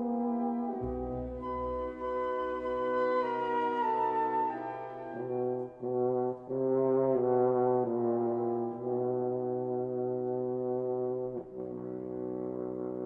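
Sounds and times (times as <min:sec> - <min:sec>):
french horn playing: 0:00.0 - 0:13.0
orchestra: 0:00.0 - 0:13.0.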